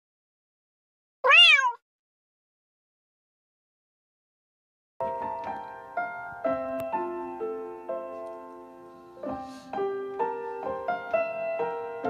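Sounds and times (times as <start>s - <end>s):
cat meow: 1.2s - 1.8s.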